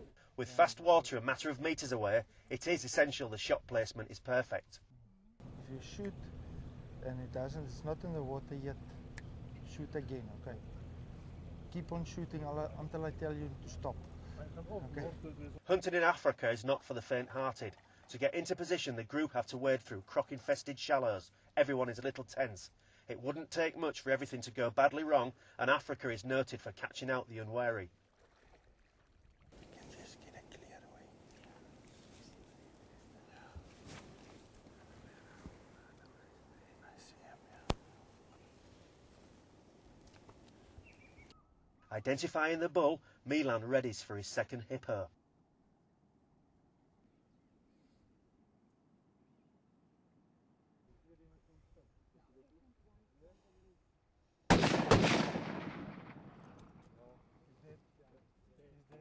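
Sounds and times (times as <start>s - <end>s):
outdoor background noise: 0.0s - 59.0s
faint whispering voices: 29.6s - 33.8s, 34.9s - 38.1s
rifle shots with echo: 54.5s - 57.0s.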